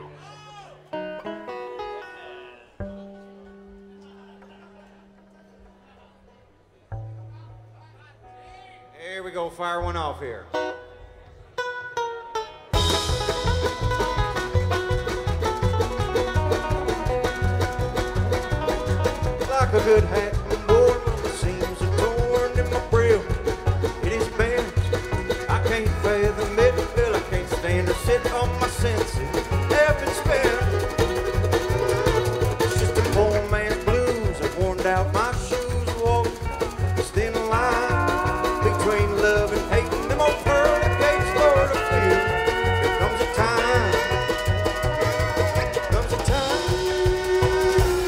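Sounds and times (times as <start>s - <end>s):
string band playing: 0.8s - 4.4s, 9.3s - 48.0s
drum kit and congas: 12.7s - 48.0s
high held melody lines: 36.5s - 48.0s.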